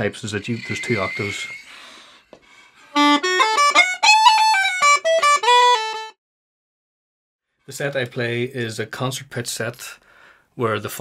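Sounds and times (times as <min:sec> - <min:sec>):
uilleann pipes chanter playing fast notes: 0:00.4 - 0:01.9, 0:03.0 - 0:05.8.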